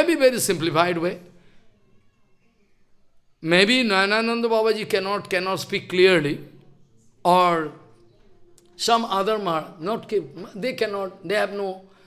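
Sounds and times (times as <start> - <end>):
man speaking: 0.0 - 1.3, 3.4 - 6.5, 7.2 - 7.8, 8.8 - 11.9.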